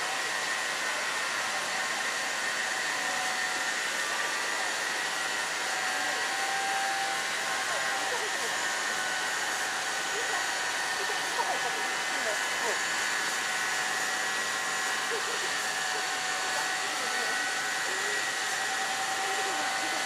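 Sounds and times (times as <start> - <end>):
steam hissing: 0.8 - 20.0.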